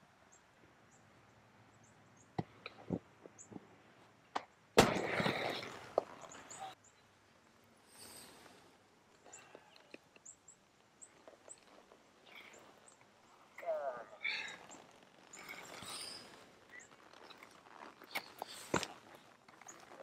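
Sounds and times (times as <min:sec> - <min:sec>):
skate wheels rolling on concrete: 0:02.4 - 0:06.8, 0:07.9 - 0:20.0
inline skates landing on concrete: 0:04.4 - 0:06.1.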